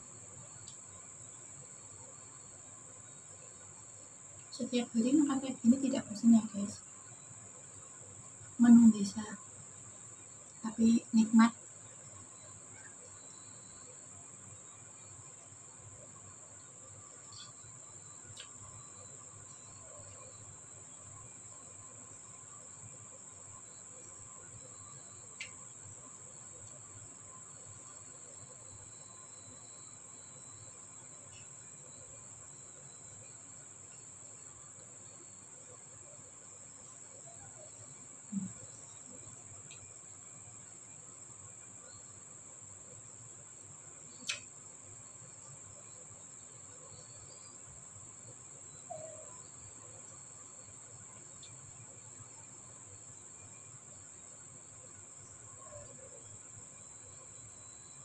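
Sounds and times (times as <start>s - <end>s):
faint high-pitched buzz: 0.0s - 58.0s.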